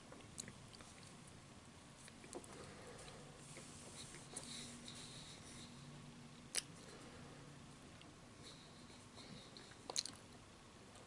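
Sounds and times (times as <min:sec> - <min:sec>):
low steady hum: 0:00.0 - 0:11.0
person chewing food: 0:00.1 - 0:01.2, 0:09.5 - 0:10.4.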